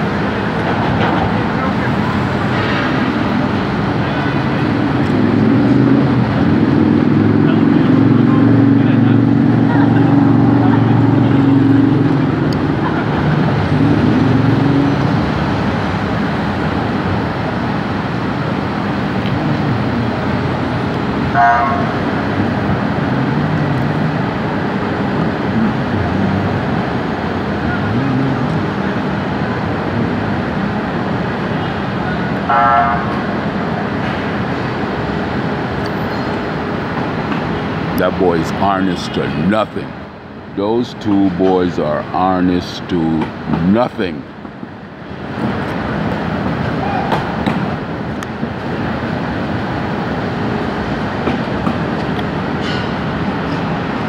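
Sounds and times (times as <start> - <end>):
city traffic rumble: 0.0 - 54.0
vehicle horn honks: 21.3 - 22.0, 32.5 - 33.1.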